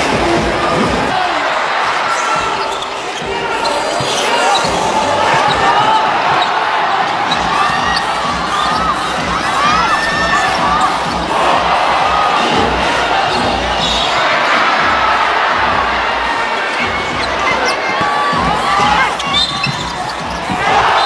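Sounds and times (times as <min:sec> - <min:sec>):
arena crowd noise: 0:00.0 - 0:21.0.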